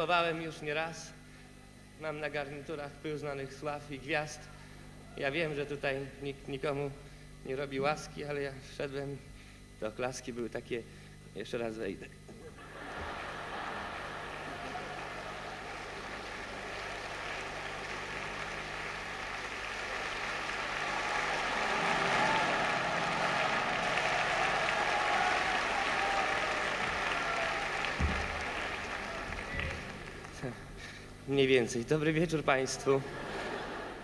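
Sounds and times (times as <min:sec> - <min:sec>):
large audience applauding: 0:12.6 - 0:31.0.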